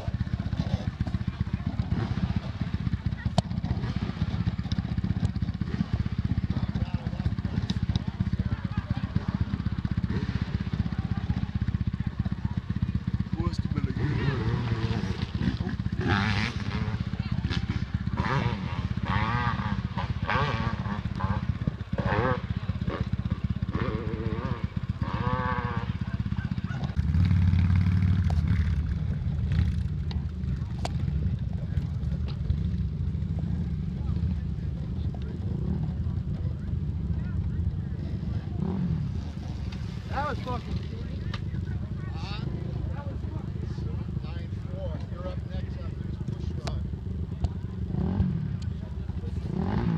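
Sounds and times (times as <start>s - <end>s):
people talking: 0.0s - 23.1s, 23.7s - 27.0s, 28.4s - 49.9s
dirt bike engines rumbling: 0.0s - 49.9s.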